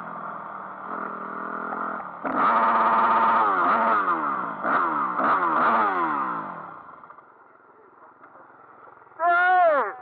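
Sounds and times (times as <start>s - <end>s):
motorcycle engine revving: 0.0s - 7.3s.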